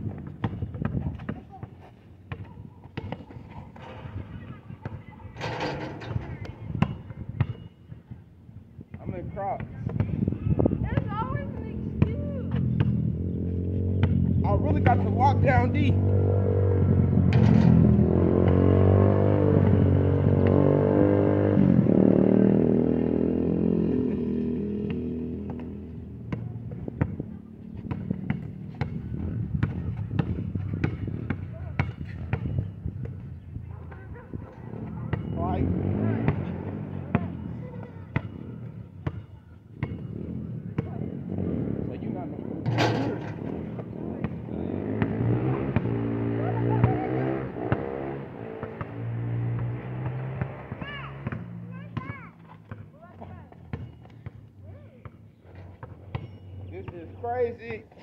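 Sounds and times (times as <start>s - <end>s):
basketball bouncing on asphalt: 0.0s - 5.4s, 6.2s - 15.9s, 24.5s - 41.8s, 43.3s - 45.9s, 47.6s - 58.0s.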